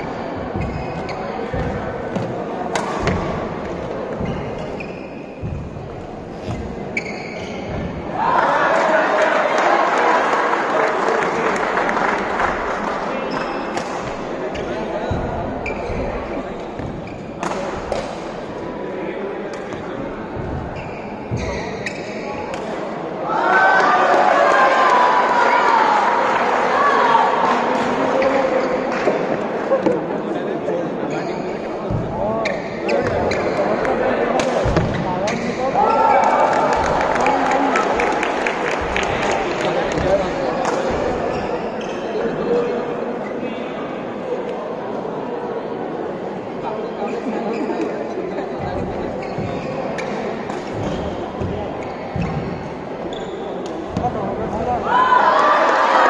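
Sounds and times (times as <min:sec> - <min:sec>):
shoes squeaking on court: 0:00.0 - 0:08.1, 0:13.3 - 0:17.4, 0:19.7 - 0:22.6, 0:31.0 - 0:33.8, 0:47.1 - 0:54.6
murmur of spectators talking: 0:00.0 - 0:56.0
rackets hitting shuttlecock: 0:00.5 - 0:03.4, 0:16.8 - 0:18.3, 0:19.5 - 0:20.6, 0:34.3 - 0:35.5, 0:49.4 - 0:51.5
racket hitting shuttlecock: 0:00.6 - 0:03.4, 0:13.7 - 0:15.8, 0:16.8 - 0:18.3, 0:21.3 - 0:23.0, 0:34.4 - 0:35.5.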